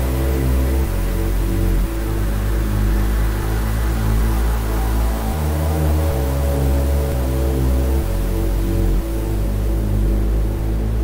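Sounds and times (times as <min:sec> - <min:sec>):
dark synthesizer music: 0:00.0 - 0:11.0.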